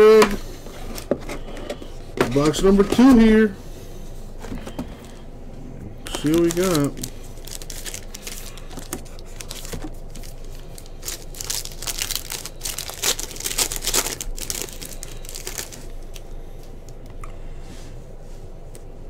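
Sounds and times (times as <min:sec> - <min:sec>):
foil wrapper tearing and crinkling: 0:06.1 - 0:16.1.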